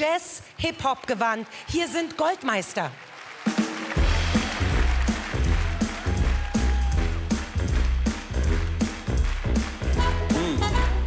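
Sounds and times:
drums beat: 0:03.4 - 0:11.0
bass line: 0:04.0 - 0:11.0.

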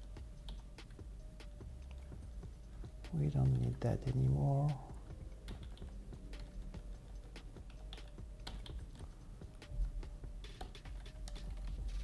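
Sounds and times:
keyboard typing: 0:05.4 - 0:09.7, 0:10.4 - 0:12.0.

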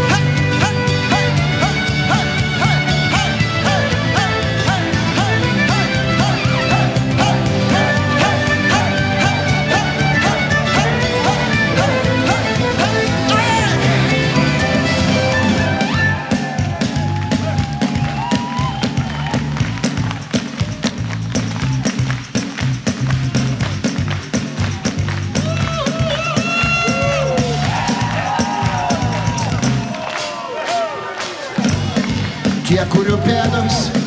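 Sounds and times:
live rock band playing: 0:00.0 - 0:30.3
rhythmic bass line: 0:00.0 - 0:30.3, 0:31.5 - 0:34.0
crowd noise: 0:00.0 - 0:34.0.

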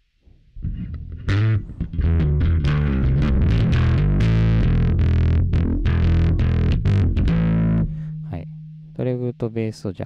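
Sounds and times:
distorted electric bass: 0:00.3 - 0:10.0.

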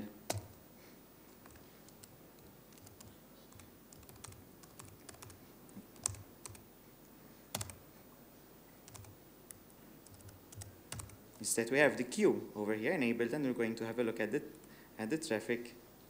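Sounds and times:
keystrokes on laptop keyboard: 0:00.3 - 0:00.6, 0:01.4 - 0:06.6, 0:07.5 - 0:07.8, 0:08.9 - 0:09.2, 0:10.0 - 0:11.2.

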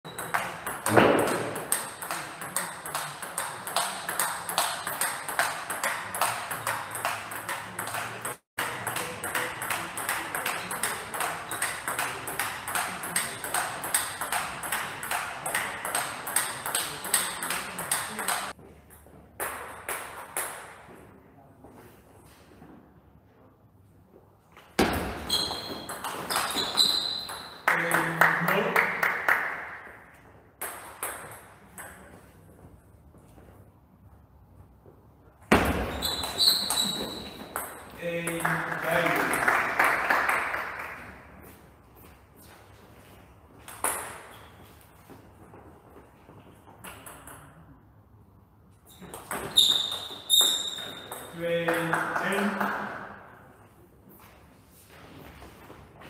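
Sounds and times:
short high squeaks: 0:25.2 - 0:27.6, 0:35.9 - 0:37.5, 0:48.9 - 0:51.3.

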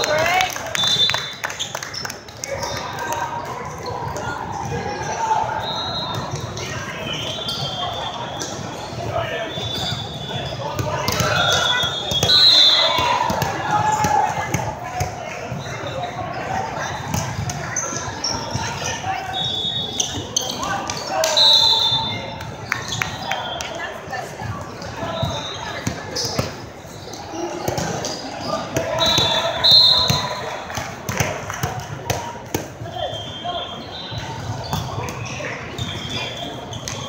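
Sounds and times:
echoing voices in a hall: 0:00.0 - 0:37.0.

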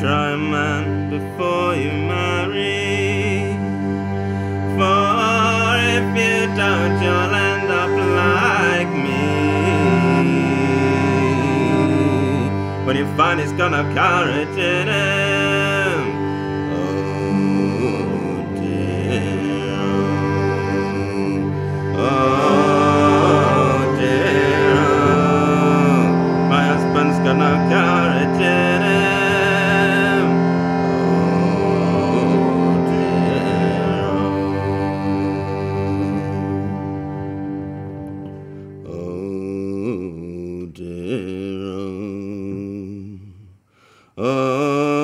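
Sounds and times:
steady low drone: 0:00.0 - 0:38.9
cello and fiddle playing: 0:00.0 - 0:39.4.

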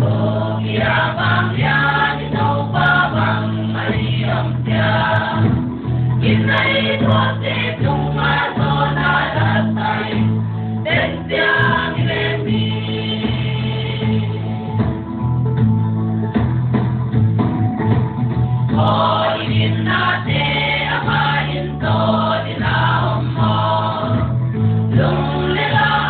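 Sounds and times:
choir singing gospel song: 0:00.0 - 0:14.5, 0:18.7 - 0:26.0.

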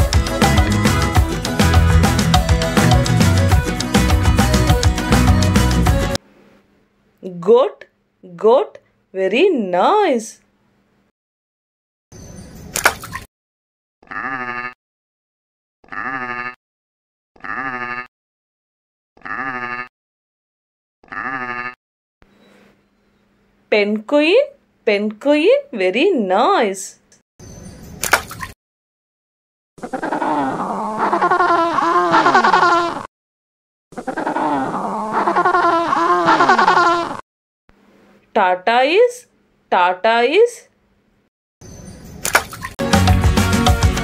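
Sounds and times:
water splash: 0:12.7 - 0:13.3, 0:28.0 - 0:28.6, 0:42.2 - 0:42.8
goat bleating: 0:14.1 - 0:14.8, 0:15.9 - 0:16.6, 0:17.4 - 0:18.1, 0:19.2 - 0:19.9, 0:21.1 - 0:21.8, 0:29.9 - 0:33.0, 0:34.0 - 0:37.2
penguins calling: 0:29.8 - 0:33.0, 0:34.0 - 0:37.2.

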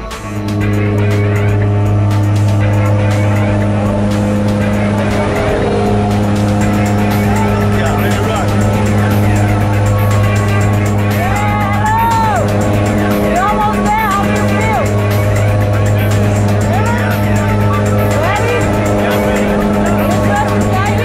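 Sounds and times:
propeller plane engines droning: 0:00.0 - 0:21.0.

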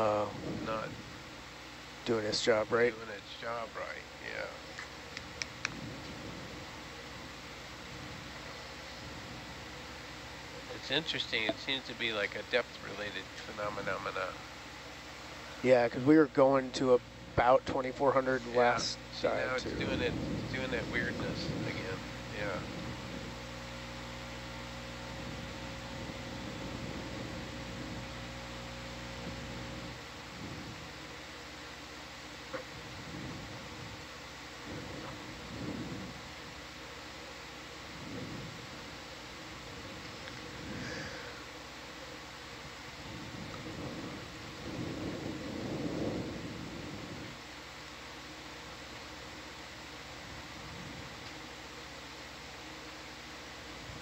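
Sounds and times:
low equipment hum: 0:00.0 - 0:54.0
steady hiss: 0:00.0 - 0:54.0
muffled low swells: 0:17.1 - 0:23.4.

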